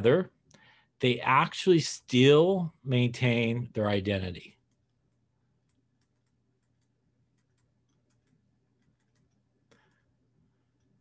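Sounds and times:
faint low hum: 0.0 - 11.0
stylus ticks on tablet: 5.6 - 10.0.

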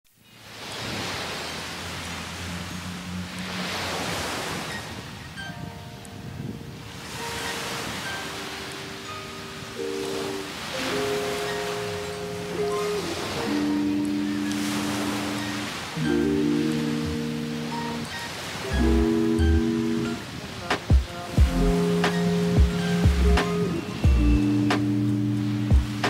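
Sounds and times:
sea waves washing on beach: 0.2 - 26.0
soft background music: 5.3 - 26.0.

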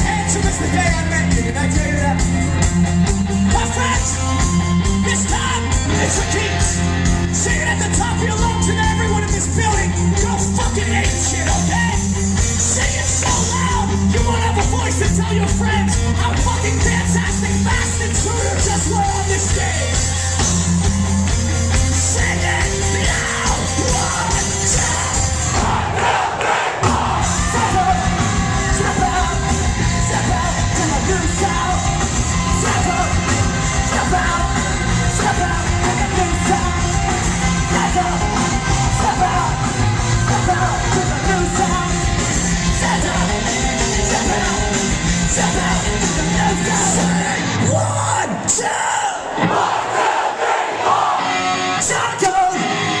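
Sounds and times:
punk rock band playing live: 0.0 - 48.8, 51.1 - 53.0
crowd singing and yelling: 0.0 - 53.0
shouted vocals: 22.1 - 42.0, 42.7 - 53.0.

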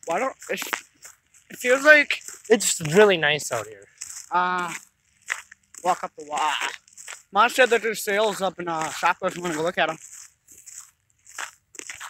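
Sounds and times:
footsteps crunching: 0.0 - 12.0.

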